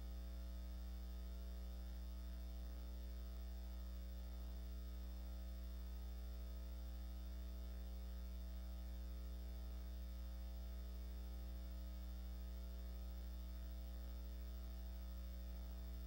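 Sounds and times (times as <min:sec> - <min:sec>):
faint electrical mains hum: 0:00.0 - 0:16.0.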